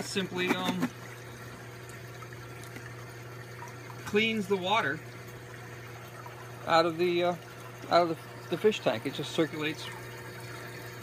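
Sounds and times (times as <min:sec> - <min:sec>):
water running from hose into tank: 0:00.0 - 0:11.0.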